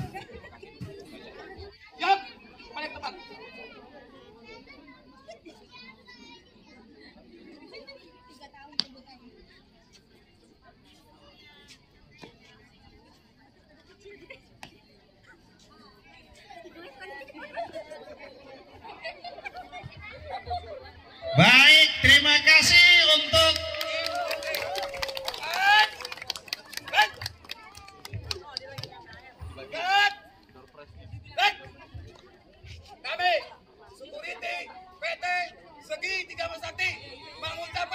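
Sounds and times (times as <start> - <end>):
distant people chatting: 0.0 - 37.9
man shouting commands: 21.3 - 24.1.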